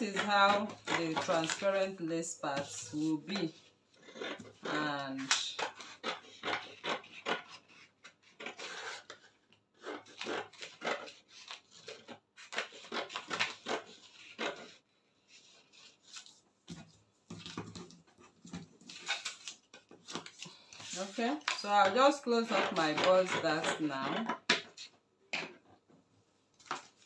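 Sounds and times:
scissors snipping paper: 0:00.0 - 0:02.0, 0:02.6 - 0:14.8, 0:18.8 - 0:24.8.

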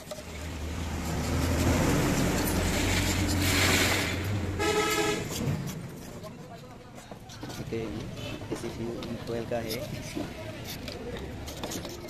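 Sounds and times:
vehicle engine rumbling: 0:00.0 - 0:06.8.

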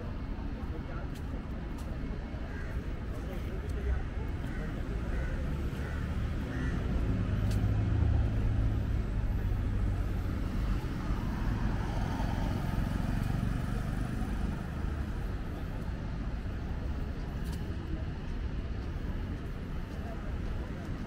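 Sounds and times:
road noise from passing vehicles: 0:00.0 - 0:21.0
car driving past: 0:07.0 - 0:15.1.

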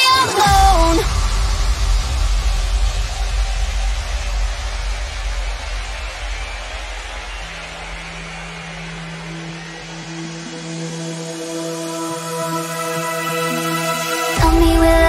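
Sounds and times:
white noise wash: 0:00.4 - 0:10.5
deep bass: 0:00.5 - 0:09.8, 0:14.4 - 0:15.0.

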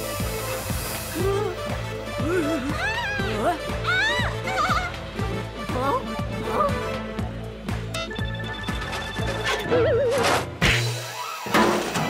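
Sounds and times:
background music with beat: 0:00.0 - 0:09.9.

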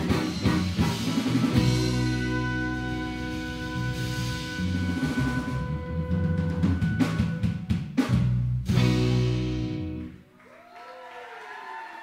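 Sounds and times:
live band chord: 0:00.0 - 0:10.2
audience cheering: 0:05.0 - 0:07.8, 0:10.3 - 0:12.0.

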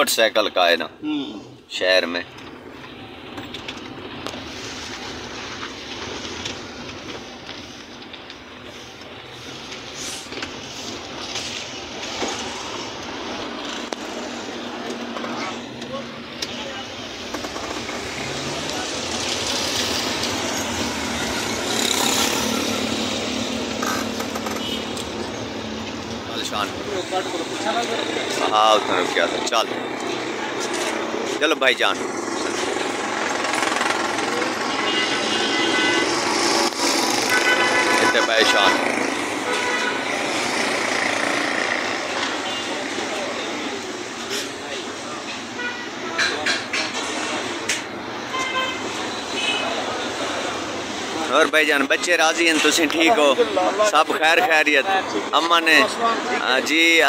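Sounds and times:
car road and engine noise: 0:00.0 - 0:57.0
passing vehicles: 0:00.0 - 0:57.0
car horn toots: 0:24.5 - 0:25.0, 0:34.7 - 0:36.2, 0:37.2 - 0:38.8, 0:39.5 - 0:40.0, 0:45.6 - 0:46.2, 0:48.3 - 0:49.7.

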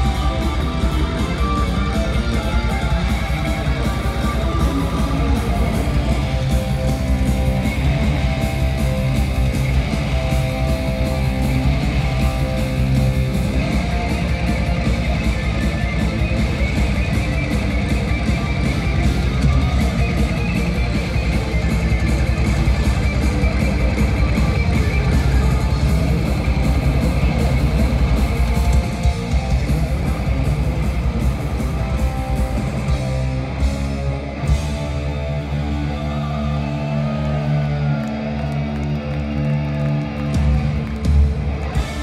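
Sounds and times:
live power metal band: 0:00.0 - 0:42.0.

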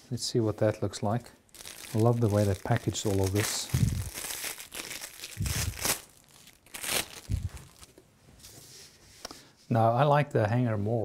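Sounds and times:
plastic wrapping crinkling: 0:01.5 - 0:08.0.

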